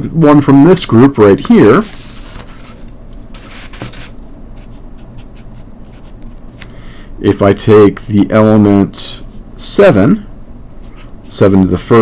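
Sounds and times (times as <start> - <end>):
marker scratching on paper: 3.4 - 6.4.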